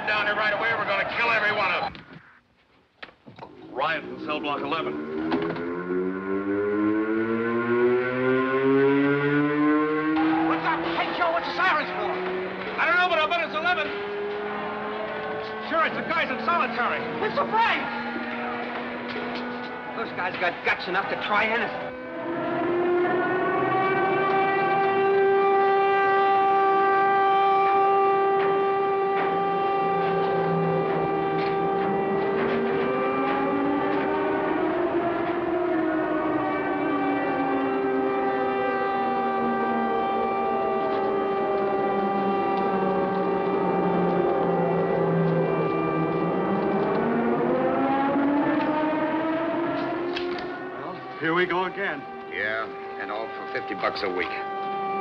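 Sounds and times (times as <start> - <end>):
alarm siren wailing: 0.0 - 2.4, 3.4 - 55.0.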